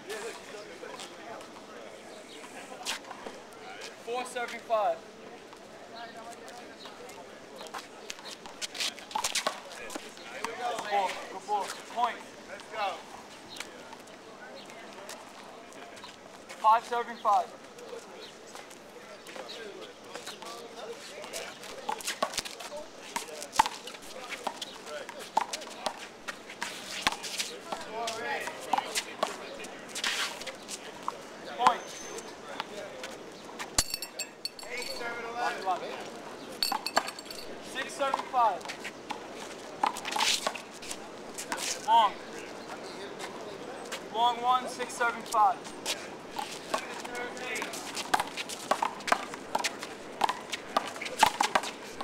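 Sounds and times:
players' voices: 0.0s - 52.0s.

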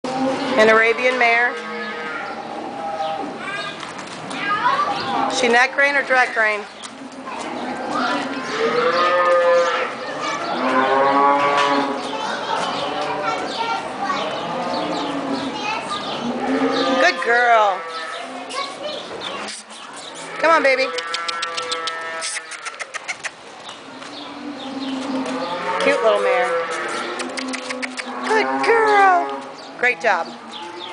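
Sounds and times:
cattle mooing: 7.9s - 12.0s, 16.2s - 18.4s, 20.3s - 22.7s, 24.4s - 30.9s
sharp tongue clicks: 20.9s - 23.4s, 26.7s - 28.4s.

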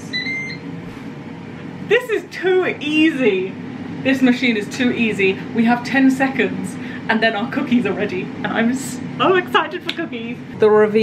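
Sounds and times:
two-tone electronic beep: 0.0s - 0.6s
air fryer fan whirring: 0.0s - 11.0s.

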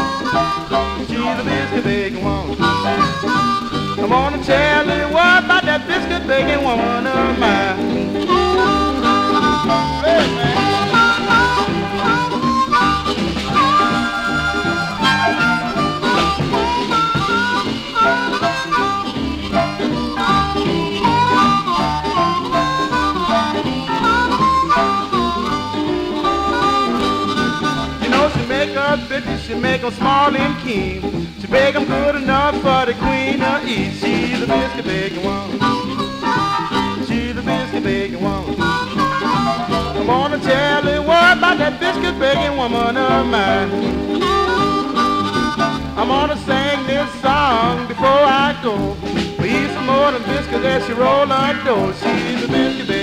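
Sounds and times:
bass and rhythm backing: 0.0s - 53.0s
blues lead instrument bent notes: 0.0s - 53.0s.

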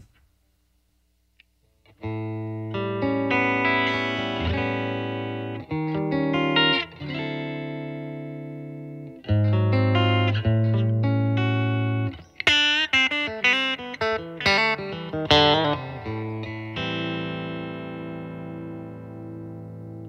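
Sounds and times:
clean electric guitar: 1.8s - 20.0s.

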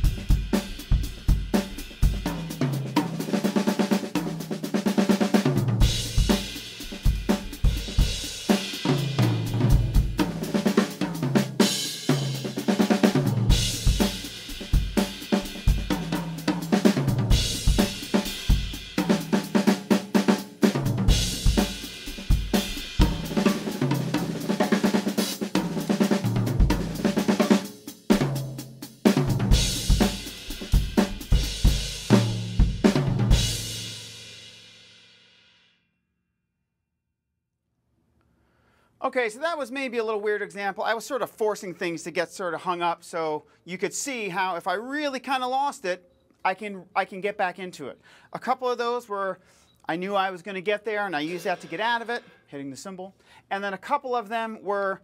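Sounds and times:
tom fills: 0.0s - 28.5s, 50.8s - 53.5s
rock drum groove: 0.0s - 35.0s, 50.6s - 52.5s
cymbal crash: 51.3s - 52.5s.

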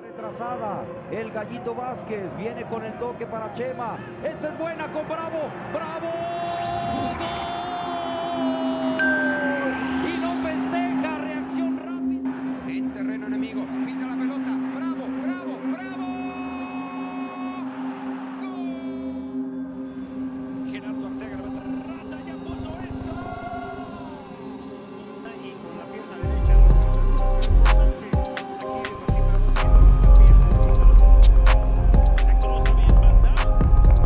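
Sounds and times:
steady low drone: 8.0s - 28.1s, 28.7s - 34.0s.

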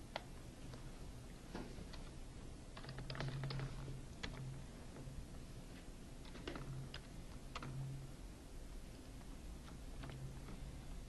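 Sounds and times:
keyboard typing: 2.8s - 4.5s, 6.2s - 7.8s.

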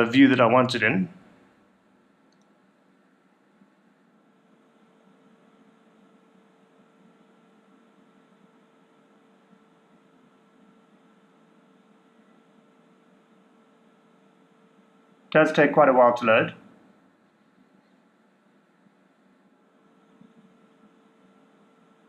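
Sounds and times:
faint steady hum: 0.0s - 22.0s
room tone hiss: 0.0s - 22.0s.

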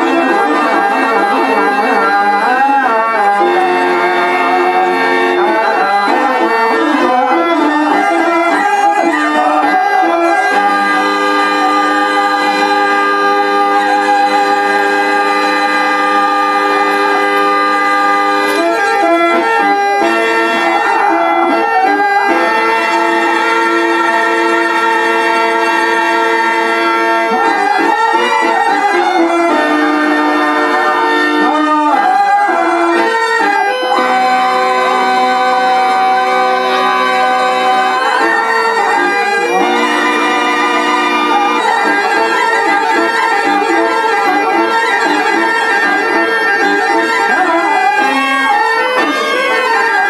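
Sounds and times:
harmonium playing chords: 0.0s - 50.0s.

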